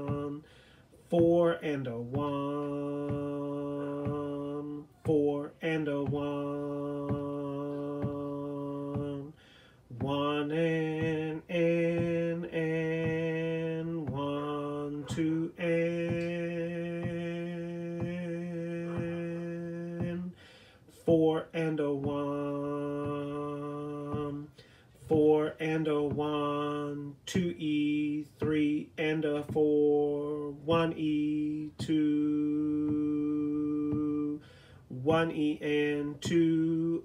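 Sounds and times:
man singing long held notes: 0:00.0 - 0:37.0.

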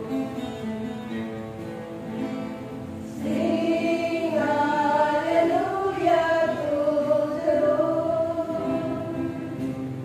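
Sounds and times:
voices singing a hymn: 0:03.0 - 0:10.0.

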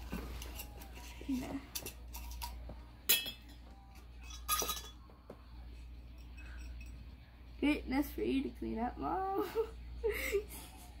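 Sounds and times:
glass jar clinking: 0:01.8 - 0:05.1, 0:06.1 - 0:07.1.

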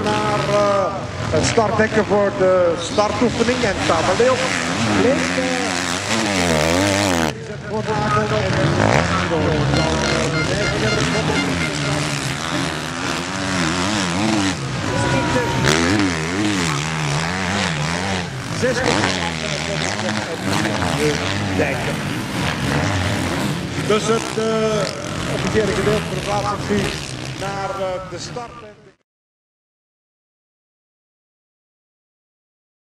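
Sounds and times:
motocross bike engines revving: 0:00.0 - 0:29.0.

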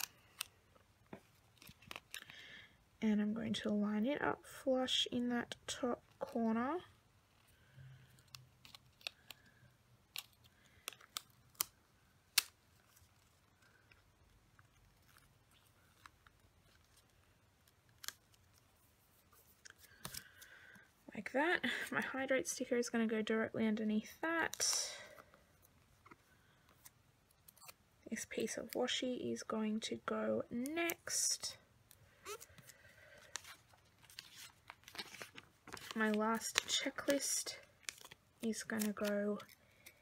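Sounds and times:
paper stickers rustling: 0:32.3 - 0:40.0.

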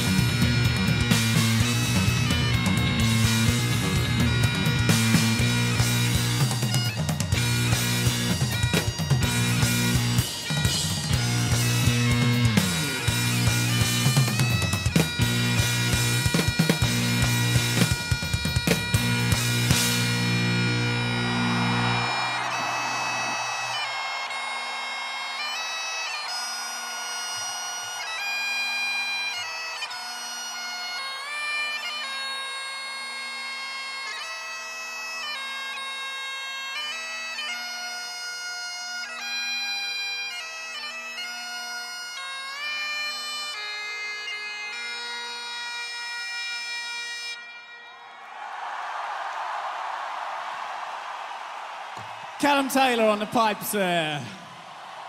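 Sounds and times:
drums and bass: 0:00.0 - 0:21.7
crowd cheering: 0:00.0 - 0:31.6, 0:47.4 - 0:55.0
bagpipes playing a melody: 0:00.0 - 0:48.1.

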